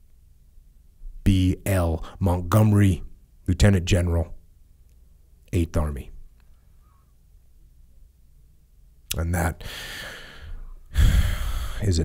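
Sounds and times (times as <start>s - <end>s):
man speaking: 9.1s - 9.6s, 11.8s - 12.0s
heavy exhale: 9.6s - 11.9s
man breathing: 9.6s - 12.0s.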